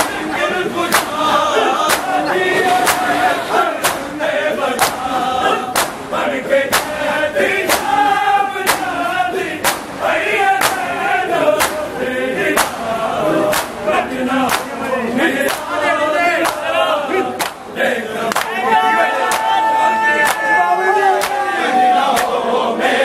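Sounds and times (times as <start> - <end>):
crowd beating chests: 0.0 - 23.0
men chanting in unison: 0.0 - 23.0.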